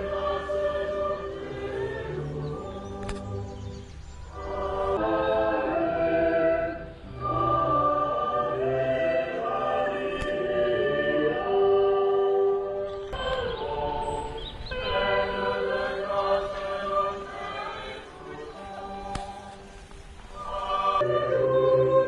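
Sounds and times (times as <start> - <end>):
choir singing slow chant: 0.0 - 22.0.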